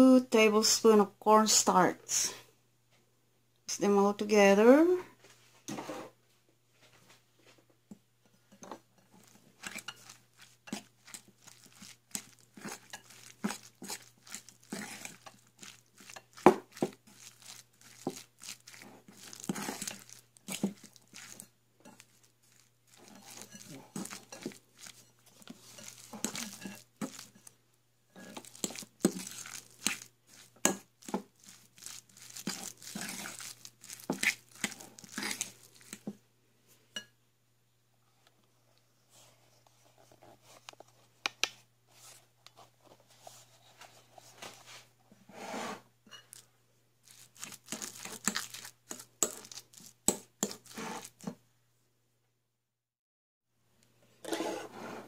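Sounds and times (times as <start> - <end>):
wet squishing of mixed meat: 9.2 - 27.5, 28.2 - 36.1, 47.0 - 51.3.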